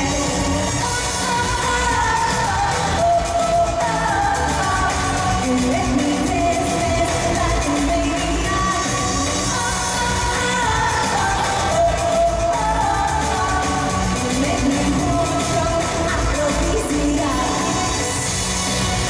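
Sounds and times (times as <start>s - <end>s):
dance-pop song over sound system: 0.0s - 19.0s
woman singing: 0.0s - 19.0s.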